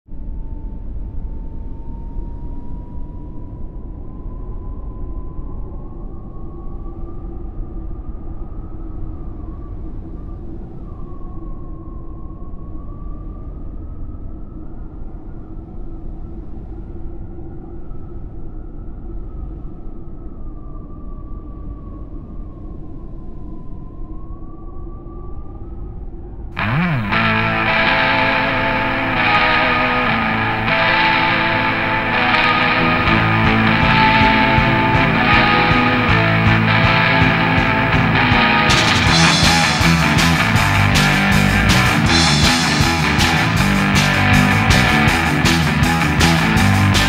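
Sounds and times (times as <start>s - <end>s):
low rumbling drone: 26.6s - 47.0s.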